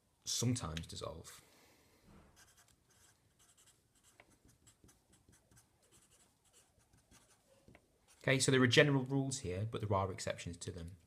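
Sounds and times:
marker writing on paper: 2.4s - 8.3s.

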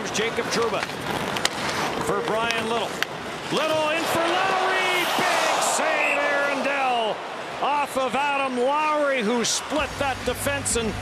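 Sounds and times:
arena crowd cheering: 3.6s - 9.9s
commentator shouting: 3.7s - 8.4s.

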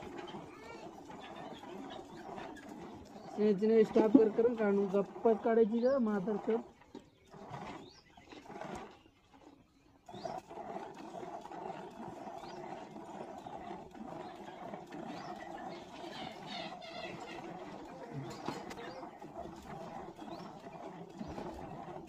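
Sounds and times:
milk squirting into plastic bucket: 0.0s - 22.0s.

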